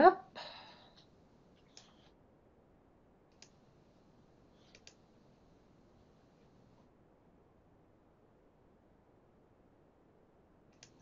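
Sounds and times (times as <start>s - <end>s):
computer mouse clicking: 1.0s - 2.1s, 3.3s - 3.6s, 4.6s - 5.0s, 10.7s - 11.0s.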